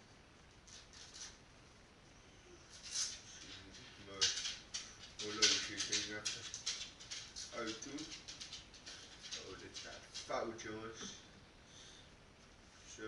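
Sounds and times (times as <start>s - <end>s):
rustling: 2.6s - 11.3s.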